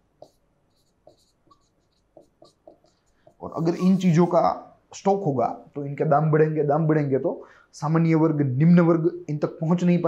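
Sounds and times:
stylus scratching on screen: 0:00.2 - 0:04.5.

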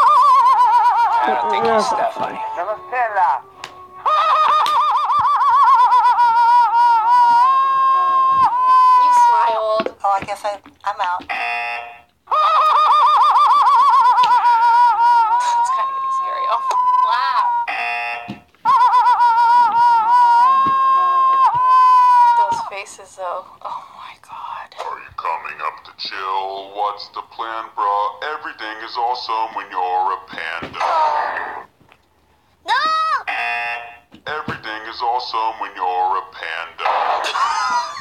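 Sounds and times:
man's squealing laugh-cry: 0:00.0 - 0:02.9, 0:03.9 - 0:09.4, 0:12.3 - 0:22.7, 0:36.8 - 0:38.0.

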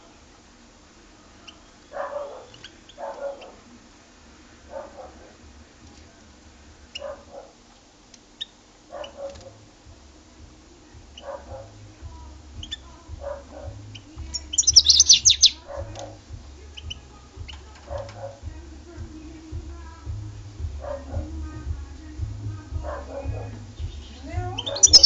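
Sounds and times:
finch chirping and twittering: 0:02.5 - 0:03.6, 0:11.0 - 0:18.5, 0:22.7 - 0:25.0.

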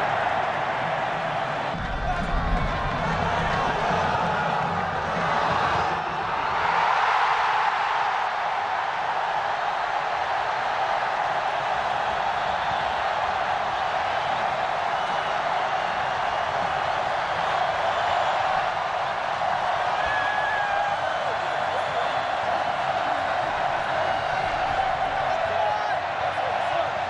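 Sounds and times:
stadium crowd cheering: 0:00.0 - 0:27.0.

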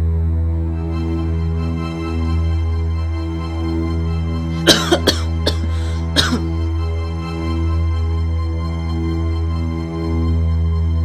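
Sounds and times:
background music drone: 0:00.0 - 0:11.0
man coughing: 0:04.6 - 0:06.5.

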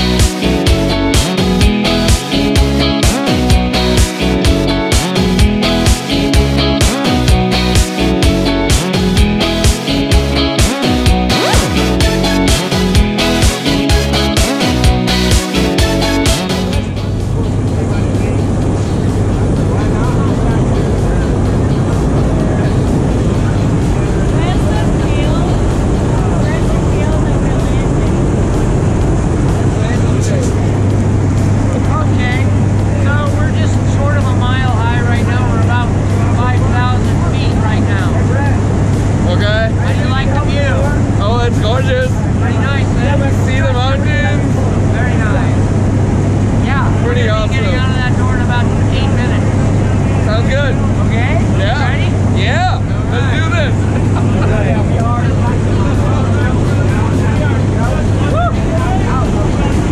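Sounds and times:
propeller plane engine drone: 0:16.6 - 0:59.9.

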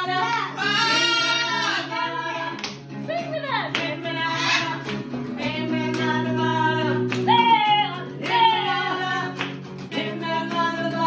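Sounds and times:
voices: 0:00.0 - 0:06.1
acoustic guitar strumming: 0:00.0 - 0:11.0
people singing: 0:00.0 - 0:11.0
people clapping along: 0:00.6 - 0:11.0.

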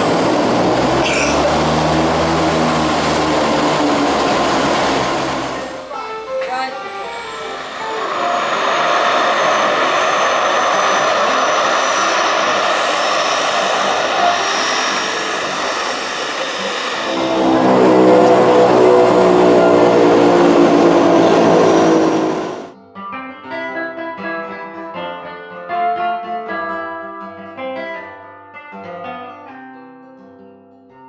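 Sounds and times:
water rushing: 0:00.0 - 0:22.7
floatplane propeller engines: 0:00.0 - 0:22.8.

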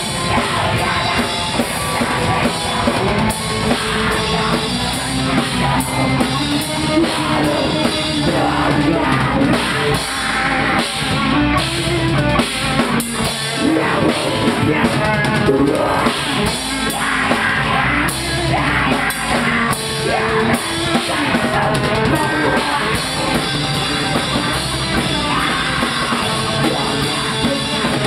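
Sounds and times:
drum kit: 0:00.0 - 0:28.0
electric guitars: 0:00.0 - 0:28.0.

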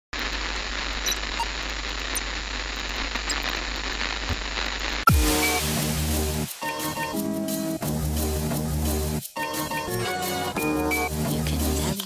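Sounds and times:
static hiss: 0:00.2 - 0:09.7.

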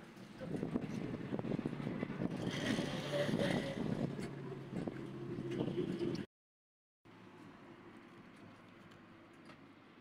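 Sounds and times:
street noise: 0:00.0 - 0:06.3.

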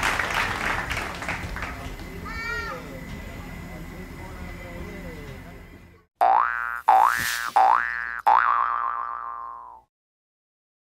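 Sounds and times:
springy boing sound effect: 0:06.2 - 0:09.9.

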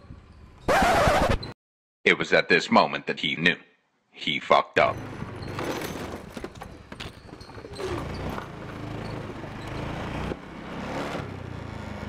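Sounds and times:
road noise: 0:04.8 - 0:12.0
motorbike engine running: 0:07.5 - 0:12.0.

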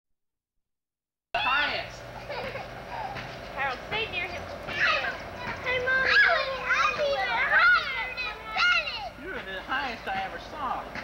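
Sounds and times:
children calling out: 0:01.4 - 0:09.3.

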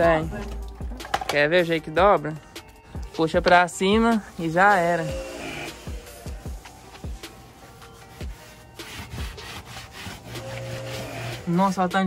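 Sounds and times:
sponge scrubbing wet seat: 0:04.2 - 0:11.8.

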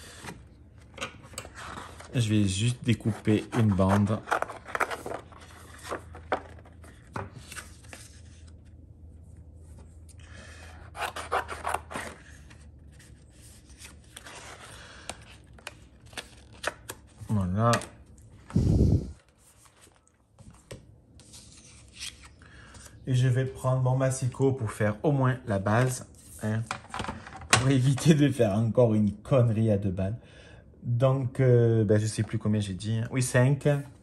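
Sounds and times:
paper rustling on cutting mat: 0:19.3 - 0:22.9.

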